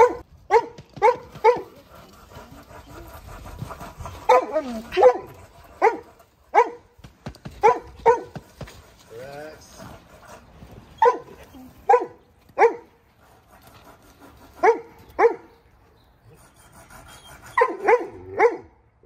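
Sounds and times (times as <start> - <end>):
dog barking: 0.0 - 1.8, 4.3 - 6.9, 7.6 - 8.4, 11.0 - 12.9, 14.6 - 15.5, 17.6 - 18.8.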